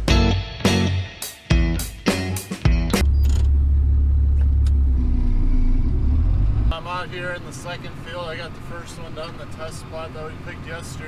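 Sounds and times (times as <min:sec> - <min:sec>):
tractor diesel engine drone: 0:03.0 - 0:11.0
man talking: 0:06.7 - 0:11.0.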